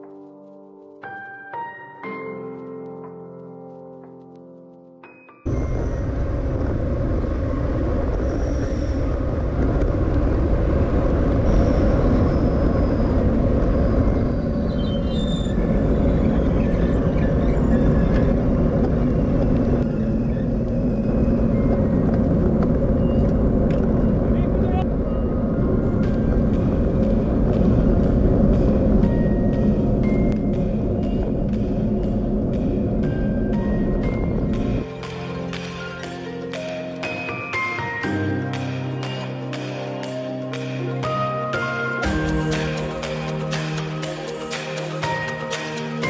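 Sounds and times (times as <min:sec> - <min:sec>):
wind rushing over microphone: 0:05.5 - 0:34.9
tyres humming on asphalt: 0:05.5 - 0:35.6.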